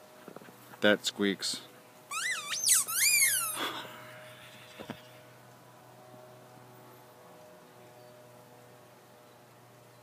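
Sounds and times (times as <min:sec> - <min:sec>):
rubber dog toy squeak: 0:02.1 - 0:03.7.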